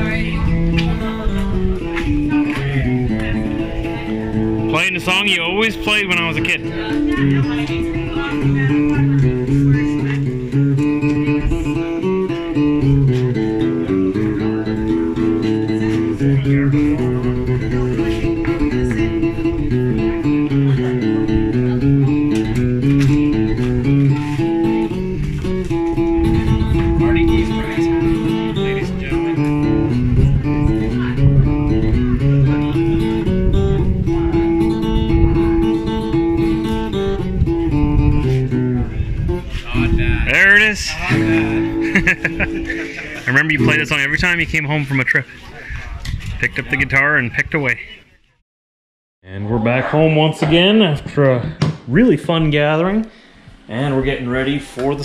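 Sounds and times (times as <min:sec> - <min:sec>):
acoustic guitar picking: 0:00.0 - 0:45.4.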